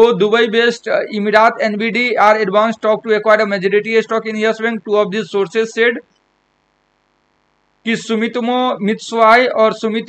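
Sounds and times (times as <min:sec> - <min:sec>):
man speaking: 0:00.0 - 0:06.0, 0:07.9 - 0:10.0
faint steady hum: 0:00.0 - 0:10.0.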